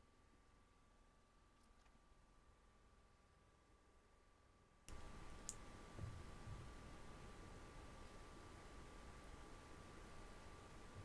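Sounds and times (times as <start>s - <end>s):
room hiss: 0.0s - 11.0s
soft low bumps: 5.9s - 6.9s.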